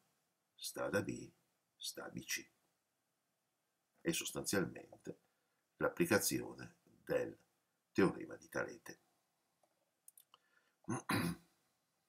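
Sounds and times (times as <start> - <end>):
faint clicks: 9.6 - 10.5
man coughing: 10.9 - 11.5.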